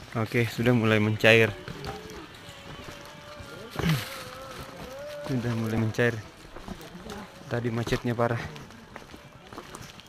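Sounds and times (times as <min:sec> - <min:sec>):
footsteps on rocky trail: 0:00.0 - 0:10.0
murmur of crowd: 0:01.1 - 0:10.0.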